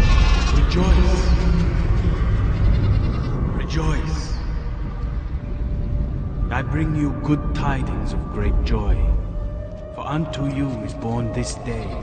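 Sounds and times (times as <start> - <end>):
steady low background noise: 0.0 - 12.0.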